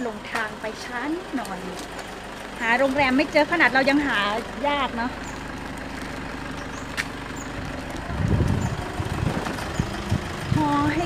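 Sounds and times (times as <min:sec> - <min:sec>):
rough low rumble: 0:00.0 - 0:11.0
vehicle engine idling: 0:00.0 - 0:11.0.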